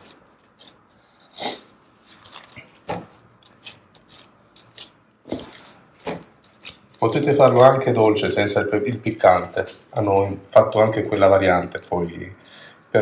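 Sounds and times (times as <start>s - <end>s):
dough rubbing and scraping on steel: 0.0s - 13.0s.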